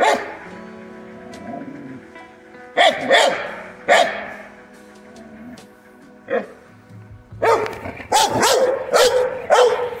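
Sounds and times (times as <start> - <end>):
dog barking: 0.0 - 0.4, 2.8 - 4.4, 7.4 - 10.0.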